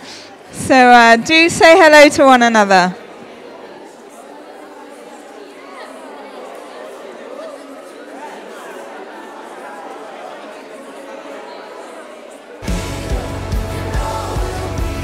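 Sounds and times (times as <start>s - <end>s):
hubbub of overlapping voices: 0.0s - 15.0s.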